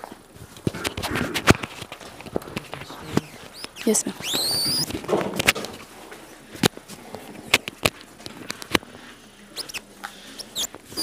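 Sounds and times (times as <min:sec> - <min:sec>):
high squeaks falling in pitch: 0:03.2 - 0:04.9.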